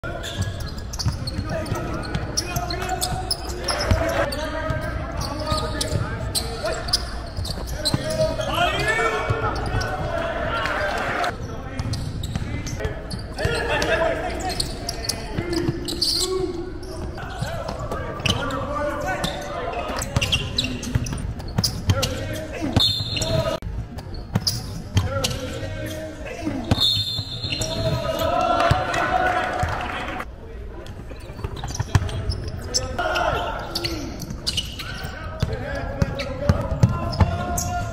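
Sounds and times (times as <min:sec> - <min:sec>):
indistinct voices: 0:27.4 - 0:30.3
basketball bouncing on court: 0:35.4 - 0:37.7.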